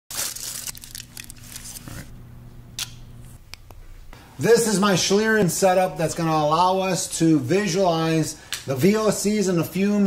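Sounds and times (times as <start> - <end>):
aluminium foil crinkling: 0.1 - 2.1
low steady hum: 0.1 - 10.0.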